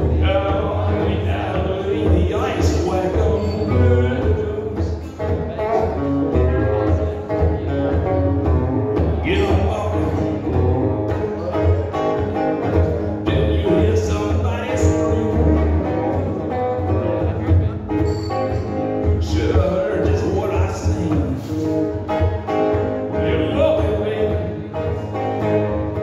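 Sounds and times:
electric guitar through amplifier: 0:00.0 - 0:26.0
steady bass: 0:00.0 - 0:26.0.

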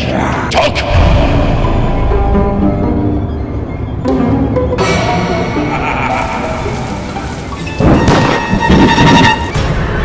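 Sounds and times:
dark trailer music: 0:00.0 - 0:10.0
rain-like hiss: 0:06.0 - 0:09.0.

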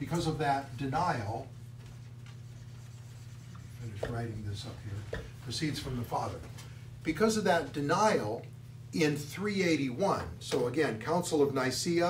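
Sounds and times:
steady low hum: 0:00.0 - 0:12.0
marker writing on whiteboard: 0:01.9 - 0:05.4.

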